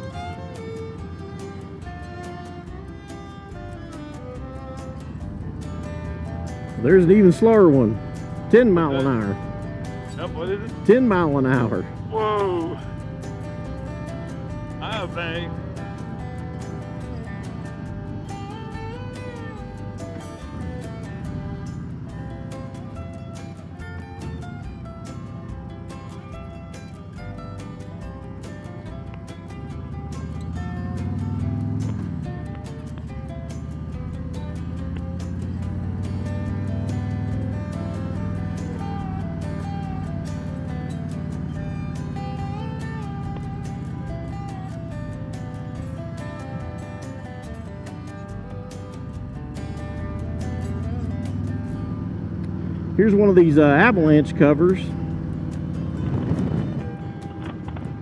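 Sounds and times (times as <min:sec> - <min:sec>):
motorcycle engine running: 0:00.0 - 0:58.0
music with steady beat: 0:00.0 - 0:58.0.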